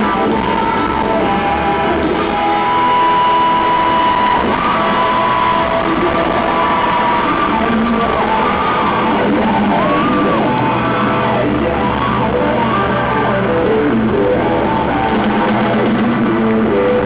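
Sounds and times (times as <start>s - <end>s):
drums: 0.0s - 17.0s
electric guitar bending notes: 0.0s - 17.0s
live rock band: 0.0s - 17.0s.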